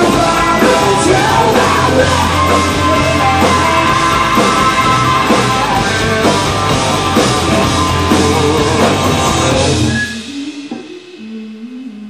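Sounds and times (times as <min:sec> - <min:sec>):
rock band stopping: 0:00.0 - 0:11.3.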